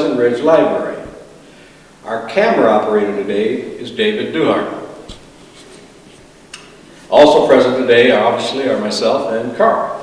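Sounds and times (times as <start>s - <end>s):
faint rustling: 4.8s - 7.3s.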